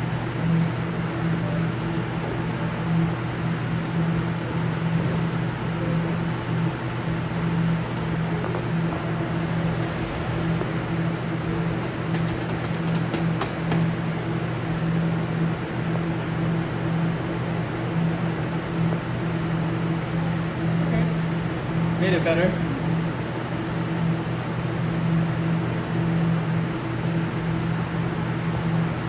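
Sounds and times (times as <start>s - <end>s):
ventilation fans humming: 0.0s - 29.0s.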